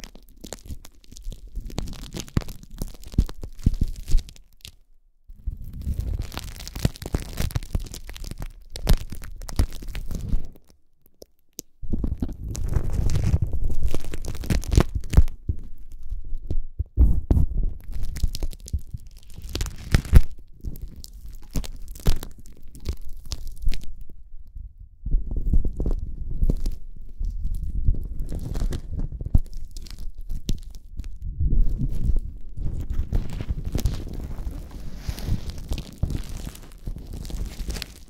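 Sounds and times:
plastic wrap crinkling: 0.0s - 4.8s, 5.8s - 16.4s, 17.8s - 24.1s, 25.7s - 38.0s.

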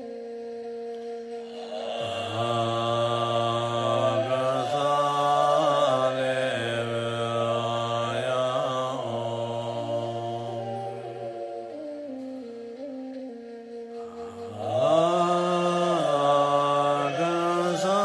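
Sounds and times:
man chanting: 1.4s - 11.9s, 14.0s - 18.0s.

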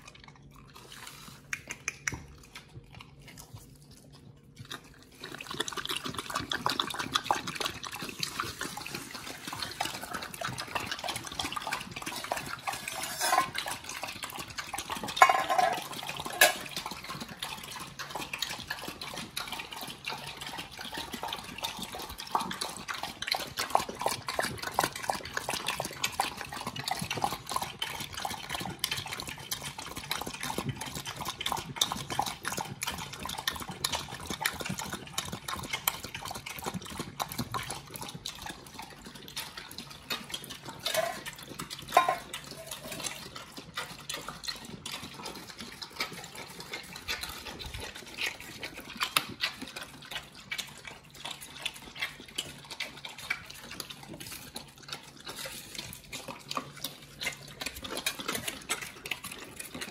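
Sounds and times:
dogs lapping water: 0.0s - 59.9s.

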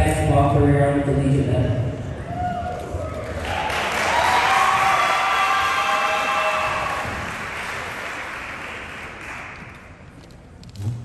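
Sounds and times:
people cheering: 2.2s - 9.8s
audience applauding: 3.1s - 10.1s.

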